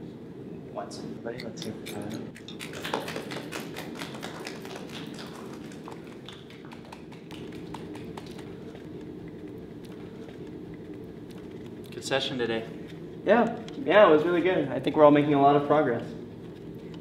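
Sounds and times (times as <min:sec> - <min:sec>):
people clapping: 0:02.4 - 0:08.7.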